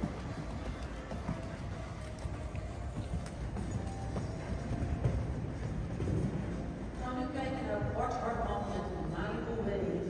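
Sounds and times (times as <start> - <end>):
horse hoofbeats on sand: 0.0 - 8.6
faint music: 0.0 - 10.0.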